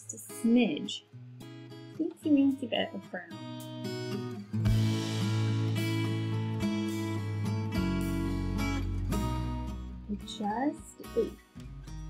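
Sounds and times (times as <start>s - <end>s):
strummed acoustic guitar chords: 2.7s - 12.0s.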